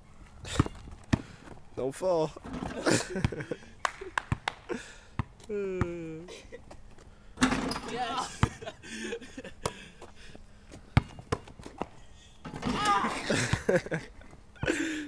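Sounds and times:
basketball bouncing on concrete: 0.5 - 1.3, 3.2 - 3.4, 5.2 - 6.0, 7.5 - 8.7, 10.9 - 11.9.

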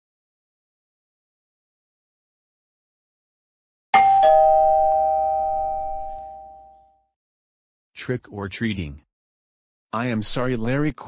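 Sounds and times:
two-tone doorbell chime: 4.0 - 7.0.

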